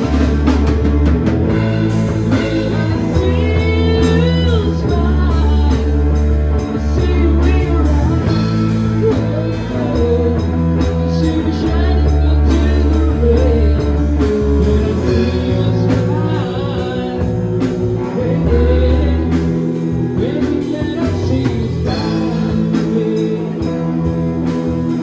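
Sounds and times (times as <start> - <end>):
gliding guitar lead line: 0.0 - 25.0
live rock band playing: 0.0 - 25.0.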